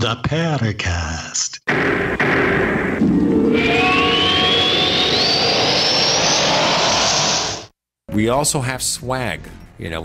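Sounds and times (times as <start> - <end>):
rising tone: 3.0 - 7.7
music: 3.1 - 4.6, 8.1 - 10.0.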